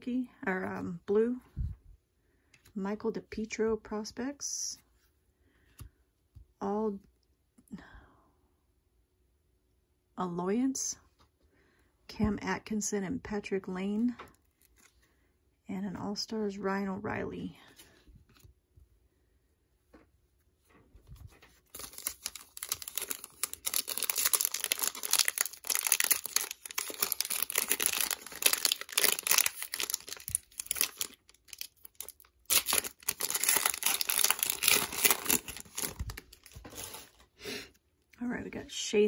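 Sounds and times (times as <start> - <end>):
foil wrapper tearing and crinkling: 21.6 - 37.2.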